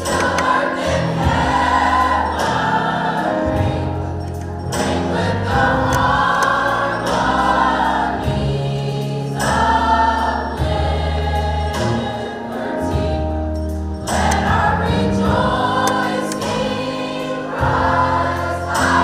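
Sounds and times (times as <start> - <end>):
choir singing in harmony: 0.0 - 19.0
low bass notes: 3.3 - 9.0.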